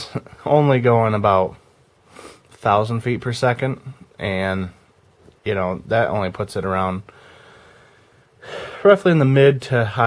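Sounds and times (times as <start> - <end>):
man speaking: 0.0 - 1.6, 2.6 - 4.8, 5.4 - 7.1, 8.8 - 10.0
faint hiss: 0.0 - 10.0
man inhaling: 7.1 - 8.9.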